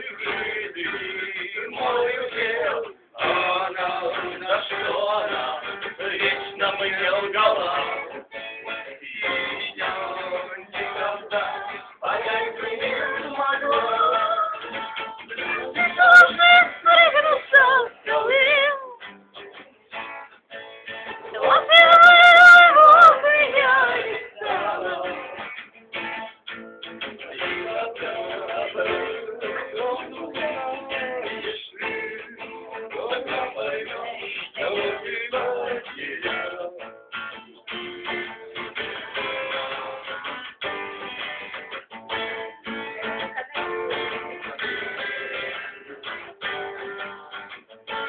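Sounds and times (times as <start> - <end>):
man singing: 0.0 - 19.0, 21.3 - 25.5, 27.1 - 37.0
guitar: 0.0 - 48.0.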